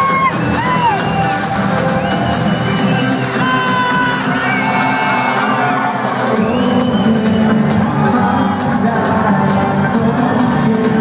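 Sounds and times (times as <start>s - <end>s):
crowd cheering and whooping: 0.0s - 9.0s
loud trance music: 0.0s - 11.0s.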